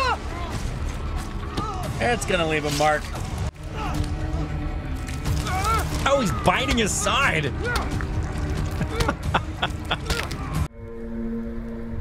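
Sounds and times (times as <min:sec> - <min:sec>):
man laughing: 0:08.8 - 0:10.3.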